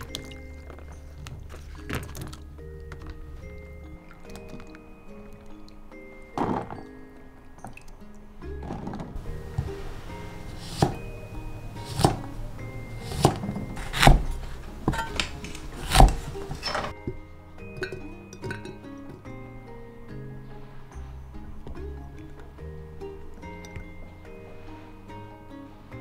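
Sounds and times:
background music: 0.0 - 26.0
cleaver chopping on wooden block: 11.9 - 12.3.

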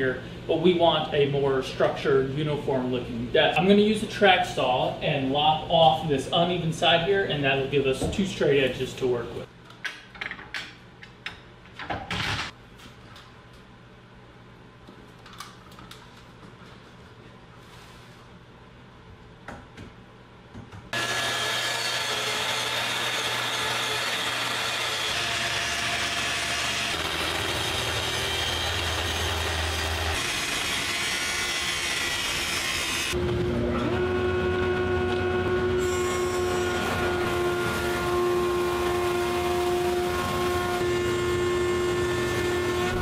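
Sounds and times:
circular saw cutting wood: 20.9 - 43.0.

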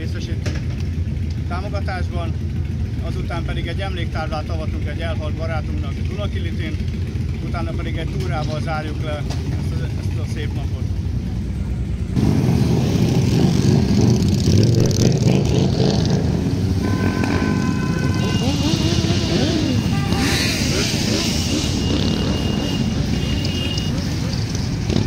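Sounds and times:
motorcycle engines rumbling: 0.0 - 25.0.

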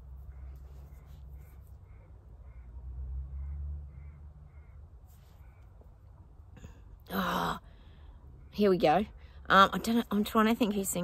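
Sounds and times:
bird calling faintly: 0.0 - 6.2.

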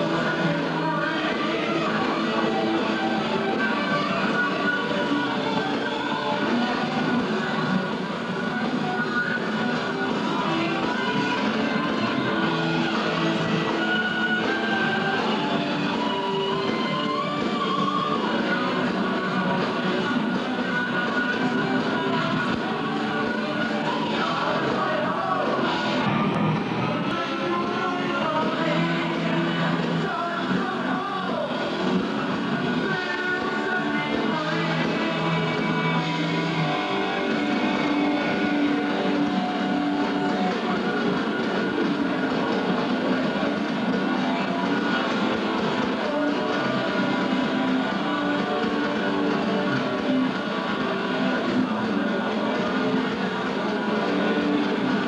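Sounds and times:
distorted electric guitars: 0.0 - 55.0
heavy metal band playing live: 0.0 - 55.0.

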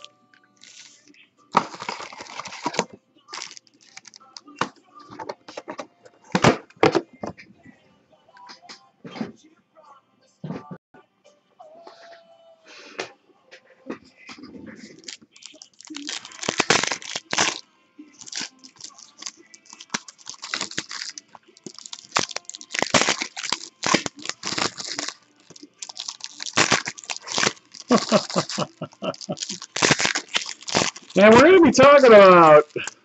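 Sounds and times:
foil wrappers tearing and crinkling: 0.6 - 4.4, 14.8 - 17.6, 18.2 - 33.0.

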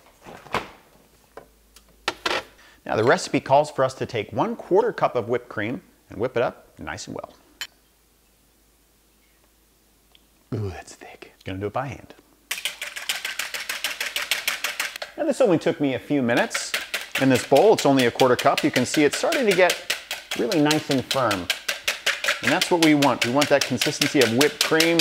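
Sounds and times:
whisk clicking against bowl: 12.5 - 15.2, 16.3 - 25.0.

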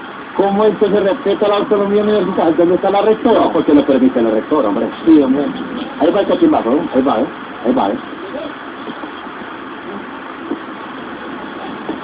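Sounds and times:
faint distant voices: 0.4 - 12.0.

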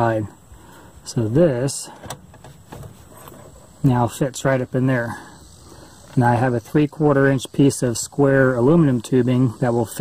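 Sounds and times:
man's voice: 1.0 - 2.0.

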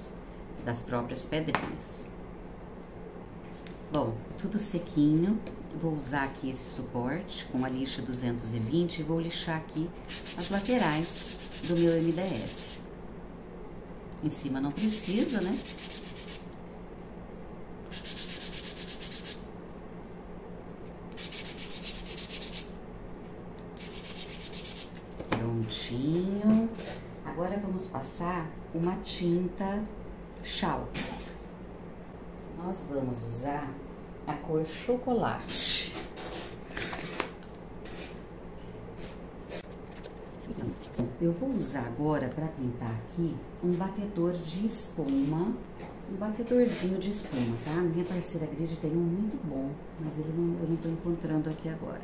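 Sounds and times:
sandpaper sanding wood: 10.1 - 12.8, 14.8 - 16.4, 17.9 - 19.4, 21.2 - 22.7, 23.8 - 24.9.

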